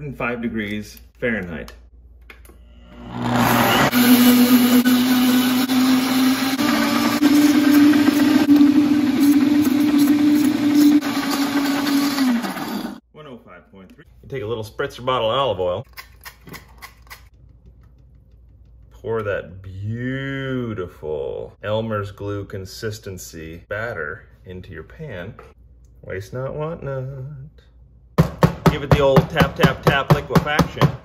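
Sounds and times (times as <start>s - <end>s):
blender motor grinding: 2.8s - 13.0s.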